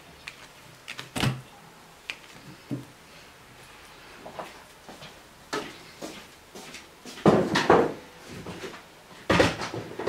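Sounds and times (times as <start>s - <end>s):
household objects knocking and clattering: 7.2s - 8.0s.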